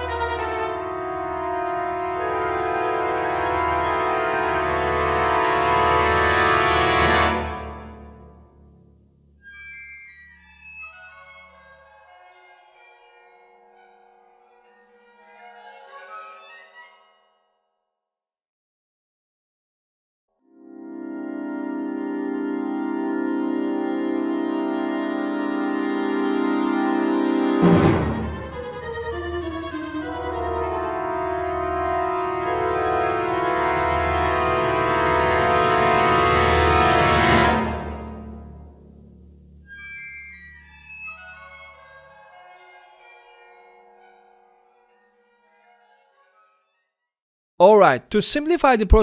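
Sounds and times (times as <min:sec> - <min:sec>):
muted orchestral brass: 0:00.0 - 0:08.2, 0:21.8 - 0:38.8
timpani roll: 0:27.6 - 0:30.6.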